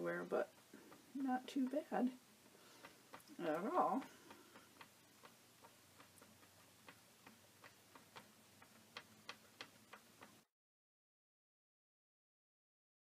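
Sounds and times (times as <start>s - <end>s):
faint light ticking: 0.1s - 10.4s.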